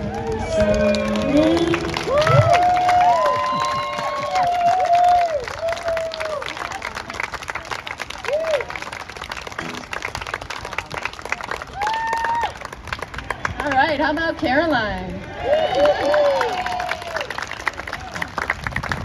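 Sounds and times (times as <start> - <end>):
cheering whoops: 0.0 - 6.5, 8.2 - 8.8, 11.7 - 12.6, 15.3 - 17.4
audience applauding: 0.0 - 14.3, 15.2 - 19.0.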